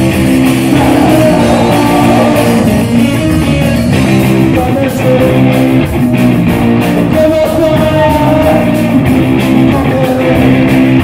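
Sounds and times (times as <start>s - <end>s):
bass chords: 0.0s - 11.0s
drums: 0.0s - 11.0s
electric guitar chords: 0.0s - 11.0s.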